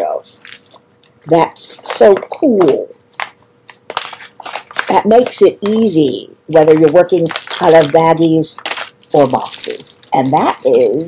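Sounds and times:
plastic packaging crackling: 0.4 - 11.0.

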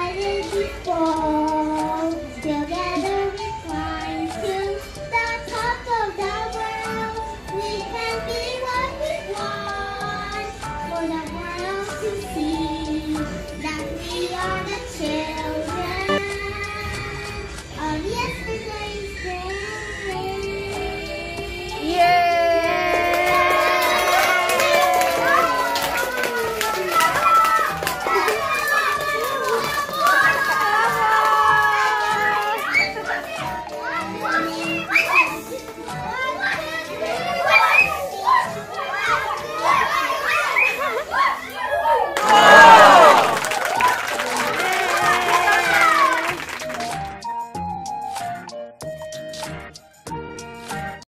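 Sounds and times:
girl singing into a microphone: 0.0 - 22.9
children chattering and calling out: 0.0 - 46.4
music: 0.0 - 51.0.

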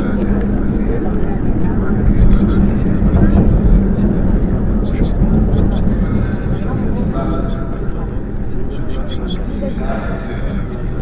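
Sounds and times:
indistinct voices: 0.0 - 11.0
loud steady rumbling: 0.0 - 11.0.

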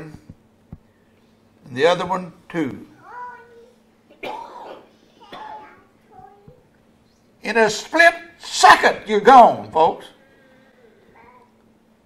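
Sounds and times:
person coughing: 4.2 - 5.6.

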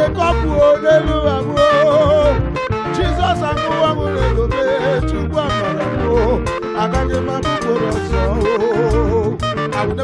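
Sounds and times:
live band with bass and drums: 0.0 - 10.0
man singing through a microphone: 0.0 - 10.0.

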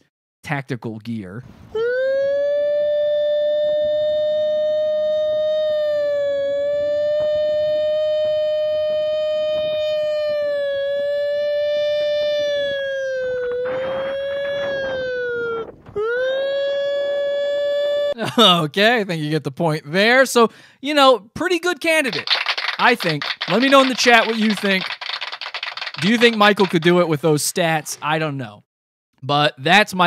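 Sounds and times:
man imitating a siren: 1.8 - 18.2.

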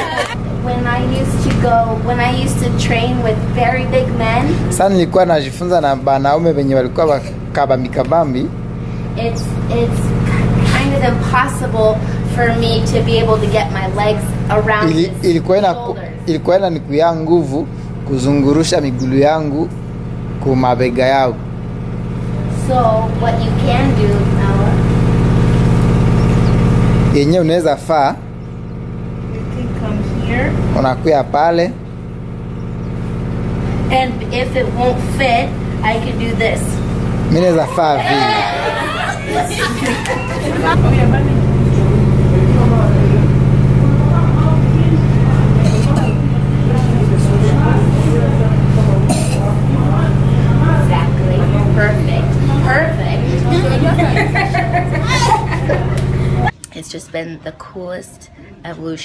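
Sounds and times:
low engine hum: 0.0 - 56.6
faint voices: 37.4 - 56.6.

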